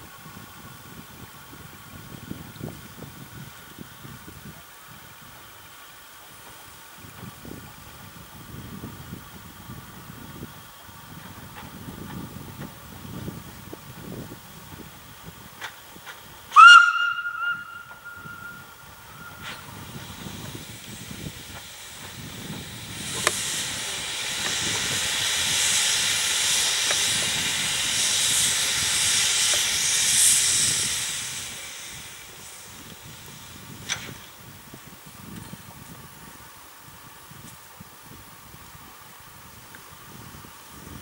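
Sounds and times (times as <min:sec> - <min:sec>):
long hiss of escaping steam: 0:00.0 - 0:41.0
steam locomotive whistle toot: 0:16.5 - 0:20.0.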